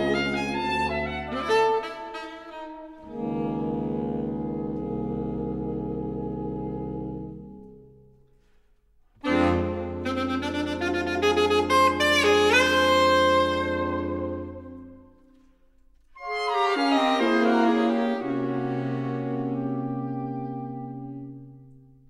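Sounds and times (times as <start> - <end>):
saxophone ensemble playing chords: 0.0 - 8.0, 9.2 - 15.3, 16.1 - 22.0.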